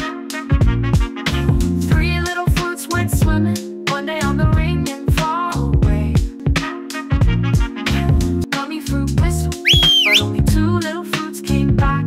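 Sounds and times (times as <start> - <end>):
upbeat children's song music: 0.0 - 12.0
sliding whistle: 9.6 - 10.3.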